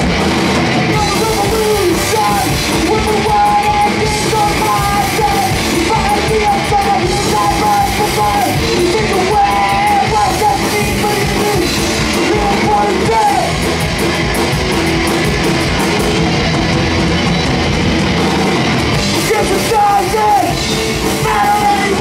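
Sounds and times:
drum kit: 0.0 - 22.0
electric bass: 0.0 - 22.0
electric guitars: 0.0 - 22.0
person singing: 0.9 - 13.7, 19.1 - 22.0.

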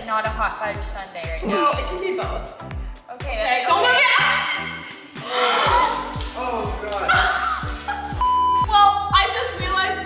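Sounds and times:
background music with beat: 0.0 - 10.0
woman laughing exclamation: 7.0 - 8.2
censor bleep: 8.2 - 8.7.

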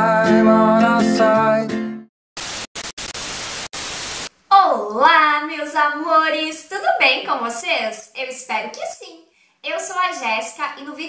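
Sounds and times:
tv static hiss: 2.4 - 4.5.

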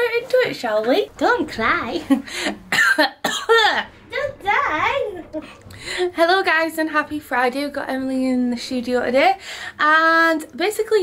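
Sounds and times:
woman laughing: 2.0 - 3.2
woman coughing: 2.7 - 3.9.

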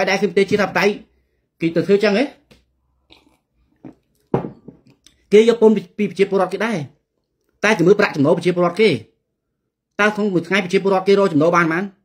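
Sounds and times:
man speaking: 0.0 - 2.6, 5.3 - 7.0, 7.6 - 9.2, 10.0 - 12.0.

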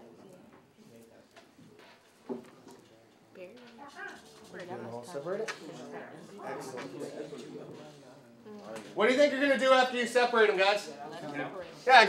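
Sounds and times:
students talking: 2.7 - 12.0.

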